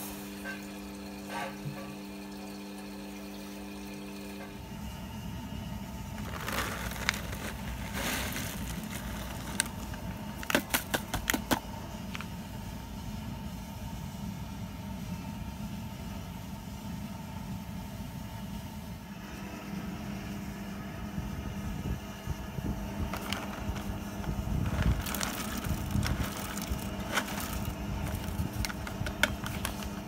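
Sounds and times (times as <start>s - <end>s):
kettle boiling low rumble: 0.0s - 30.0s
foil packet crinkling: 6.1s - 12.2s, 23.0s - 30.0s.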